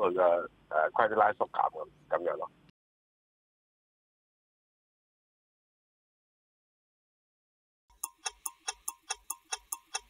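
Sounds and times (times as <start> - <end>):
clock-like ticking: 7.9 - 10.0.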